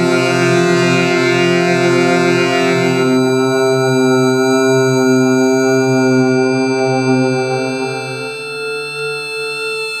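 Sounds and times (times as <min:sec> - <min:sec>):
low electronic drone: 0:00.0 - 0:10.0.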